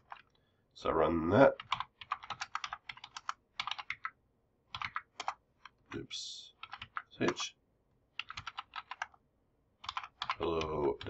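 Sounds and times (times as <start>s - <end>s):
typing on computer keyboard: 0.0s - 0.4s, 1.5s - 5.8s, 6.6s - 7.4s, 8.2s - 9.2s, 9.8s - 11.0s.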